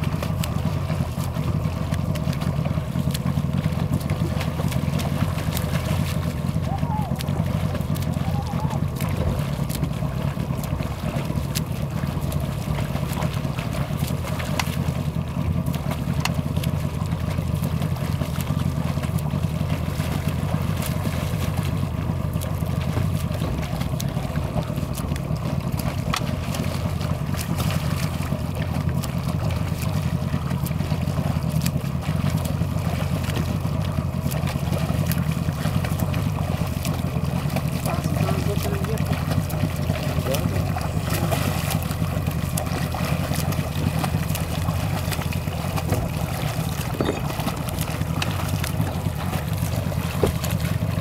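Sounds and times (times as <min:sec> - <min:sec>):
boat motor humming: 0:00.0 - 0:51.0
swimming strokes splashing: 0:00.0 - 0:51.0.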